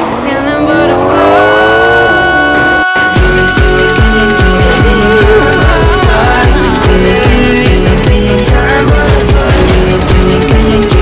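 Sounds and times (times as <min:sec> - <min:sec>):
car engine revving up: 0:00.0 - 0:11.0
music with drum beat: 0:03.2 - 0:11.0.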